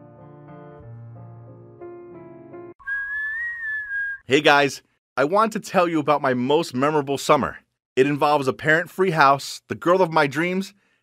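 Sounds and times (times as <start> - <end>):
soft piano music: 0.0 - 2.8
person whistling a held note: 2.8 - 4.3.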